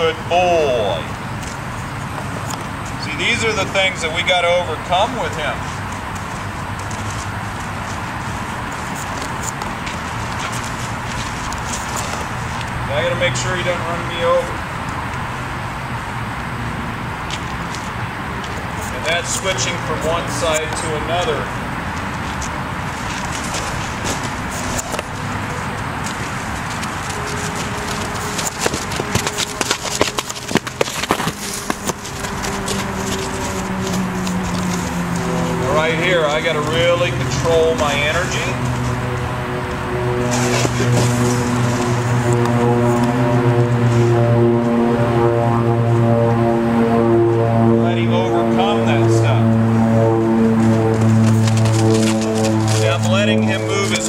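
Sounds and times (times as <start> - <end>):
steady background noise: 0.0 - 54.0
horse hooves on sandy dirt: 5.0 - 15.1, 17.3 - 43.6, 50.4 - 54.0.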